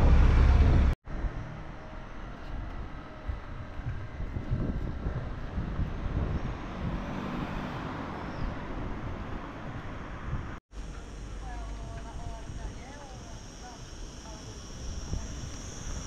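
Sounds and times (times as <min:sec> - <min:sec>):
low street rumble: 0:00.0 - 0:16.0
wash of street noise: 0:00.0 - 0:16.0.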